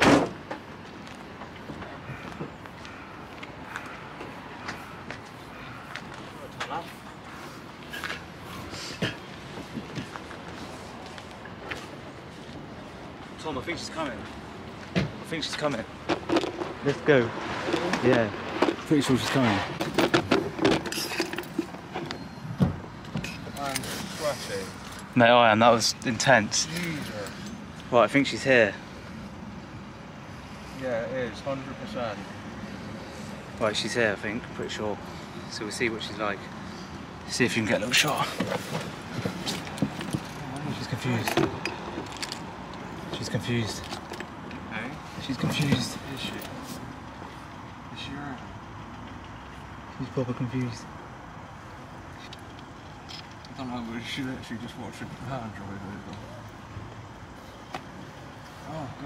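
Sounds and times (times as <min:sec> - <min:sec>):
faint car park background: 0:00.0 - 0:59.0
vehicle engine rumble: 0:00.0 - 0:59.0.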